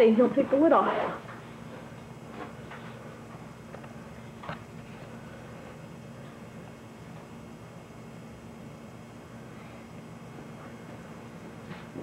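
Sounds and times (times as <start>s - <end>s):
low tape hum: 0.0s - 12.0s.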